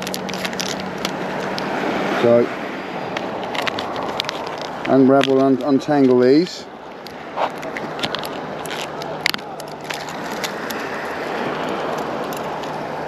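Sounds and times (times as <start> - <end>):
fishing tackle clicking and rustling: 0.0 - 13.0
outdoor background noise: 0.0 - 13.0.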